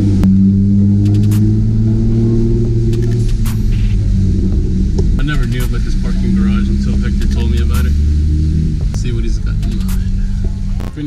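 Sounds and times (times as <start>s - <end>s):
car engine drone from inside cabin: 0.0s - 11.0s
music: 2.4s - 11.0s
person speaking: 5.2s - 8.0s, 8.9s - 11.0s.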